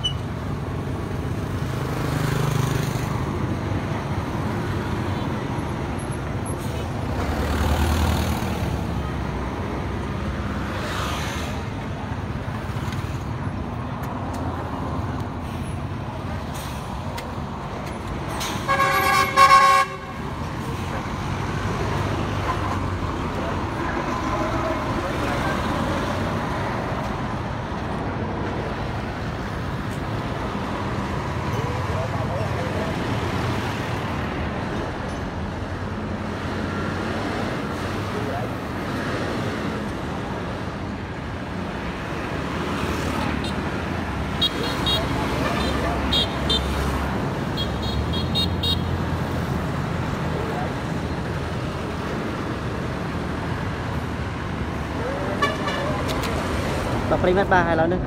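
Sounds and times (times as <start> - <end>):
road traffic: 0.0 - 58.0.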